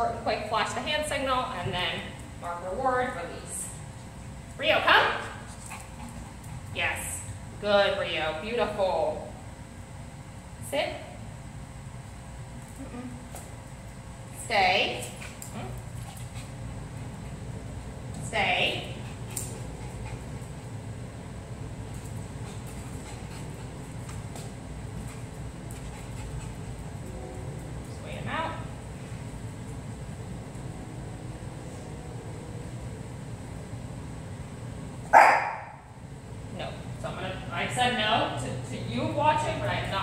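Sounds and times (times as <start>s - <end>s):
dog barking: 35.1s - 35.8s.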